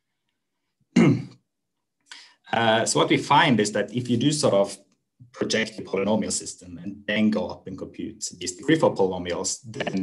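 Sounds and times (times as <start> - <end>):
man clearing his throat: 0.9 - 1.4.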